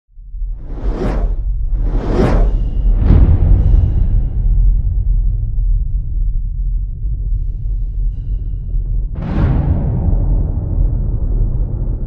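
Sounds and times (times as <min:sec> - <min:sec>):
deep rumble: 0:00.1 - 0:12.0
whoosh sound effects: 0:00.6 - 0:03.0.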